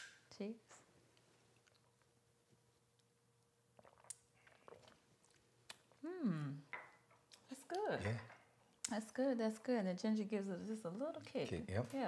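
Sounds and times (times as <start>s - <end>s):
people sipping and swallowing: 3.7s - 6.6s.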